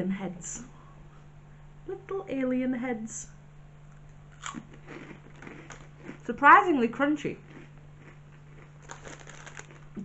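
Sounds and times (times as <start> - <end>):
steady low hum: 0.0 - 10.0
snacks being chewed: 3.9 - 6.3, 7.4 - 10.0.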